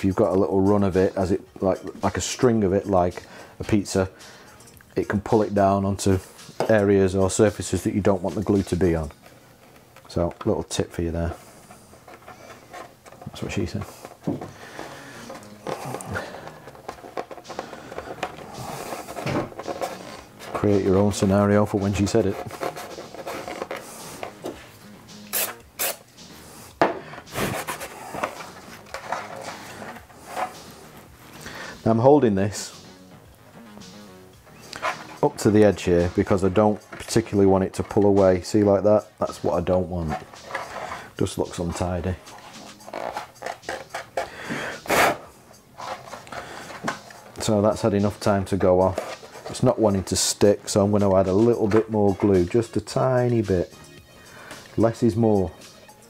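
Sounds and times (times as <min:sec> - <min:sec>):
man breathing: 0:03.2 - 0:04.7, 0:13.9 - 0:16.8, 0:17.4 - 0:19.2, 0:29.5 - 0:31.8, 0:40.6 - 0:41.2, 0:44.2 - 0:45.0, 0:46.3 - 0:46.9, 0:54.1 - 0:54.8
light handling clicks and rubs: 0:06.3 - 0:24.8, 0:27.1 - 0:31.5, 0:34.6 - 0:44.3, 0:45.0 - 0:53.7
loud sharp breath: 0:14.5 - 0:16.6, 0:31.4 - 0:31.8, 0:44.2 - 0:45.1, 0:54.2 - 0:54.6.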